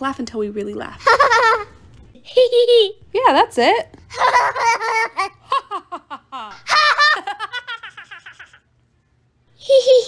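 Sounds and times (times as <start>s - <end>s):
person fake laughing: 4.1s - 8.6s.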